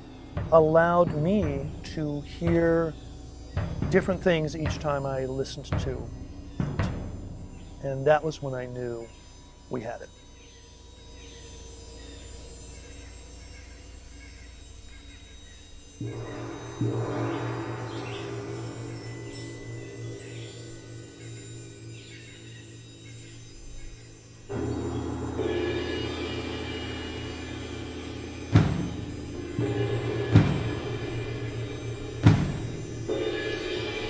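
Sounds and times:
rolled percussion rumble: 0.0s - 10.2s, 16.0s - 22.8s, 24.4s - 34.0s.

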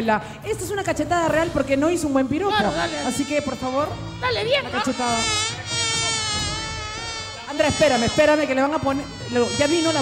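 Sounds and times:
fly buzzing: 2.5s - 10.0s.

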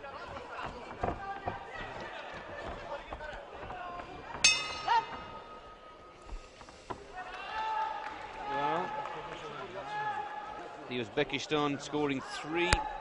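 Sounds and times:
boxing ring bell: 4.4s - 5.8s.

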